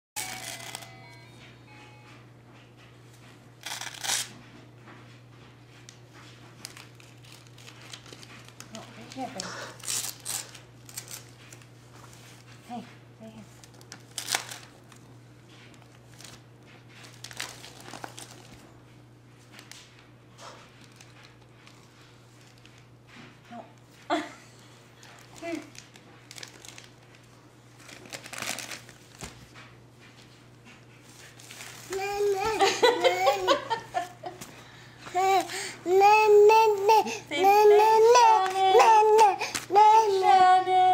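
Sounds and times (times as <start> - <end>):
wrapping paper crinkling: 0.2 - 0.9, 3.6 - 4.4, 6.5 - 12.6, 13.4 - 15.1, 15.7 - 18.8, 20.8 - 22.9, 25.0 - 29.6, 31.0 - 34.5, 35.1 - 40.9
baby whining: 31.9 - 33.7, 35.1 - 40.9.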